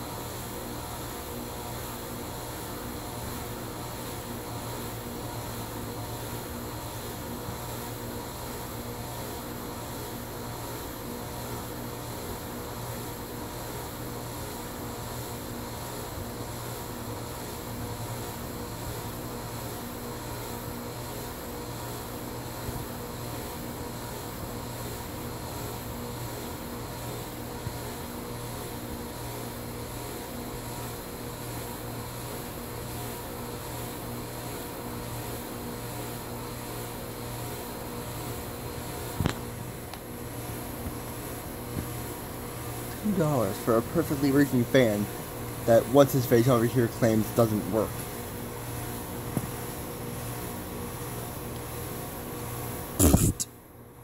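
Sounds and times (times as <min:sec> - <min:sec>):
ceiling fan spinning down: 0:36.2 - 0:53.4.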